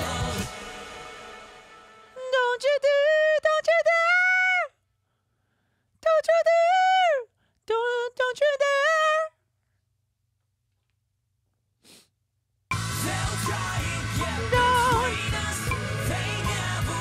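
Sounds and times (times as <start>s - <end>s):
man singing high: 12.9s - 17.0s.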